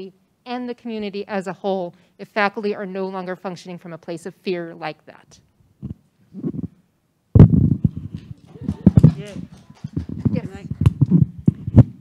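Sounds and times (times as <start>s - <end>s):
microphone handling thumps: 5.8s - 6.8s, 7.4s - 12.0s.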